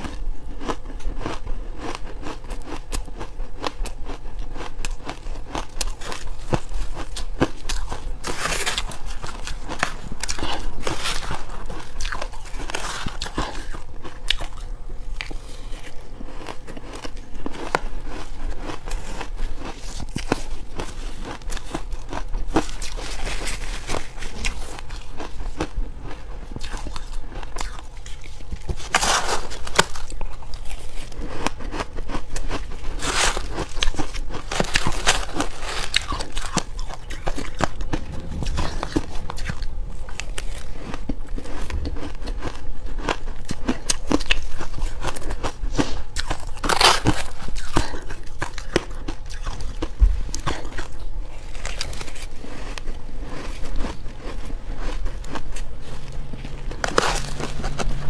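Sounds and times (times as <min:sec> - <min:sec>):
crunching and chewing ice: 0:00.0 - 0:58.0.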